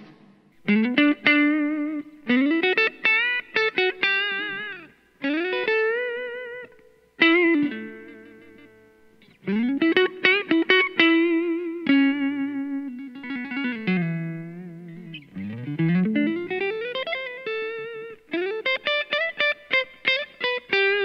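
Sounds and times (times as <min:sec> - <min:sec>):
electric guitar lead with vibrato: 0:00.0 - 0:21.0.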